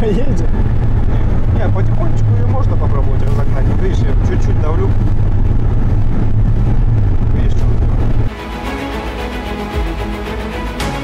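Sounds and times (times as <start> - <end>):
car engine and road drone: 0.0 - 11.0
background music: 8.2 - 11.0.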